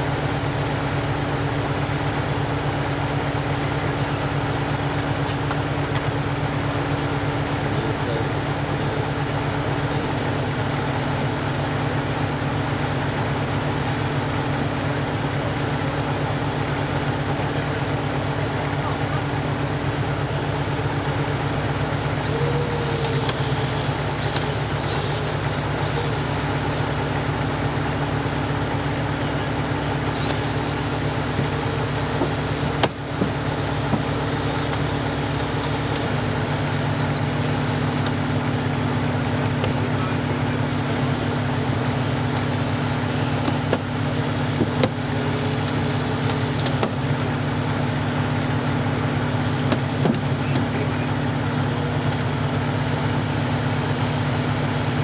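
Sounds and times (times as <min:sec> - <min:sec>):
engine idling: 0:00.0 - 0:55.0
short high squeaks: 0:22.2 - 0:26.4, 0:30.2 - 0:32.7
faint voices: 0:39.0 - 0:42.0, 0:50.2 - 0:51.2.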